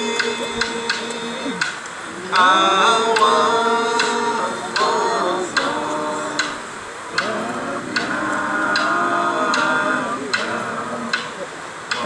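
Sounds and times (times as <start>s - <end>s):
group singing a chant: 0.0s - 12.0s
wooden clapsticks striking: 0.2s - 2.5s, 6.4s - 9.6s.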